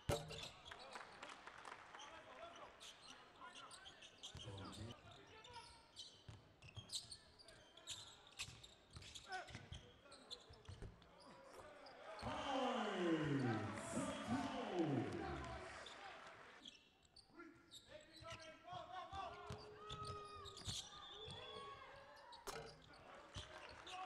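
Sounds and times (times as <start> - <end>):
voices: 11.6 - 16.6.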